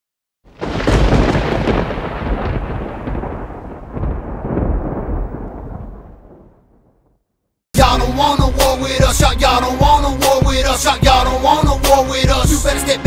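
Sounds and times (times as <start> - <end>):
rolling thunder rumble: 0.5 - 7.2.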